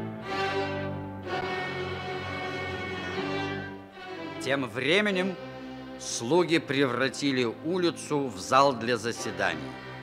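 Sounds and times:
orchestral music with violins: 0.0s - 10.0s.

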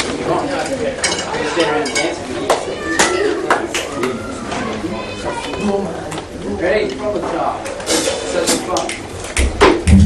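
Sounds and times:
people chattering: 0.0s - 10.0s.

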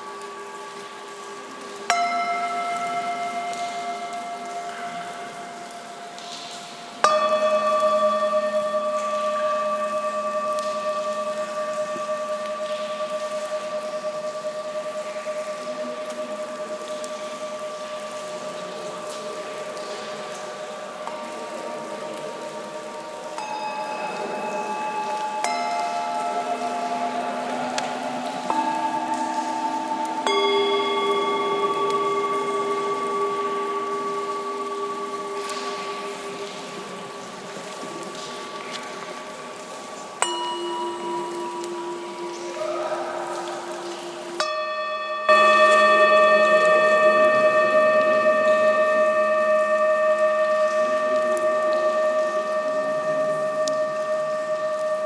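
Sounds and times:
singing bowls struck and ringing: 0.0s - 55.0s.

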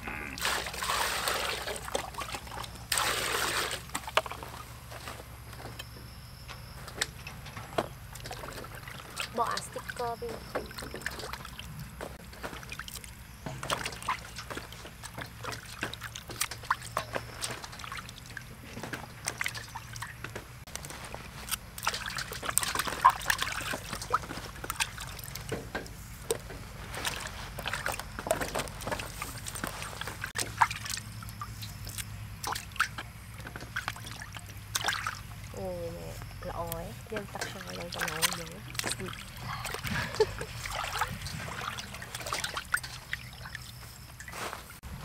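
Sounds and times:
apples clicking and scraping in bowl: 0.0s - 6.1s, 6.7s - 44.8s
water sloshing in a steel basin: 0.4s - 44.8s.

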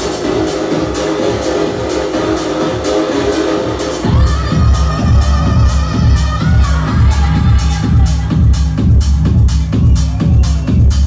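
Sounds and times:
tech house music with steady beat: 0.0s - 11.0s.

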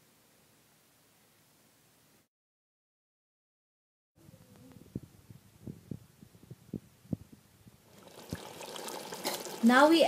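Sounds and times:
curry bubbling in a pot: 7.8s - 10.0s.

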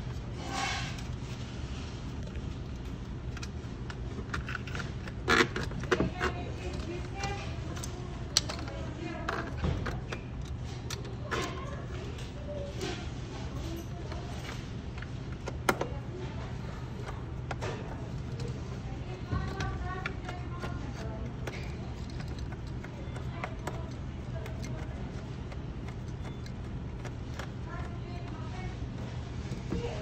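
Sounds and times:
steady low hum: 0.0s - 30.0s
faint voices: 5.3s - 30.0s.

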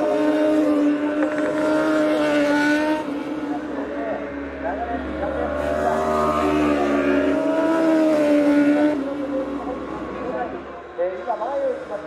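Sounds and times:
superbike engine at high revs: 0.0s - 11.3s.

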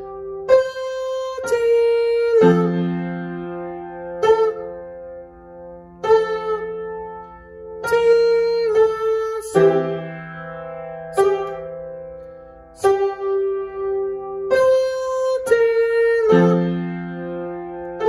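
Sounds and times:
piano notes and chords: 0.0s - 18.0s.

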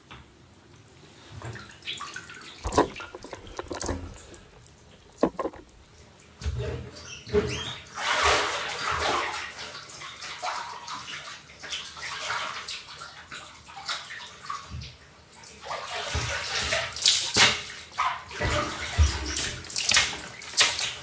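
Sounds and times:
water splashing on tiled floor: 15.5s - 21.0s.

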